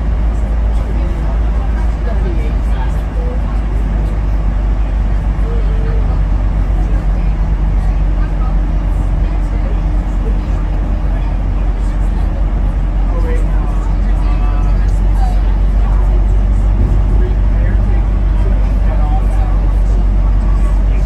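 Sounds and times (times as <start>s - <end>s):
vehicle engine and tyres rumble: 0.0s - 21.0s.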